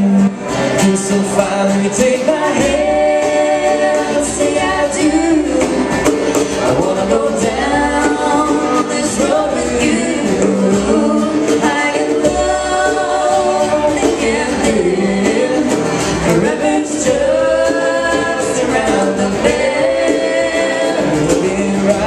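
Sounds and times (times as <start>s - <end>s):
acoustic guitars playing: 0.0s - 22.0s
people singing in harmony: 0.0s - 22.0s.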